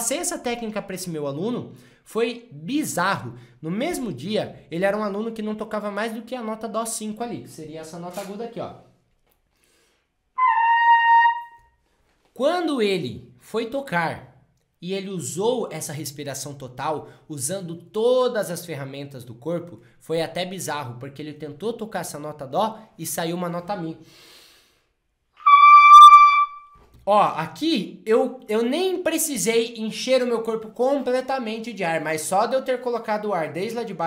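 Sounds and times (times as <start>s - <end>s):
trumpet holding high note: 10.4s - 11.7s, 25.4s - 26.7s.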